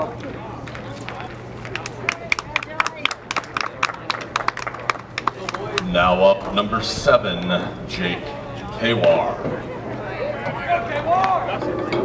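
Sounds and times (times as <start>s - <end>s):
faint crowd voices: 0.0s - 12.0s
low steady hum: 0.0s - 12.0s
spectators clapping: 0.7s - 6.6s, 11.0s - 11.4s.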